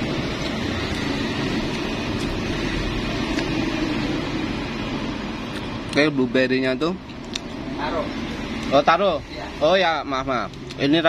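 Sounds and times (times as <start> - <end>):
street traffic noise: 0.0 - 11.0.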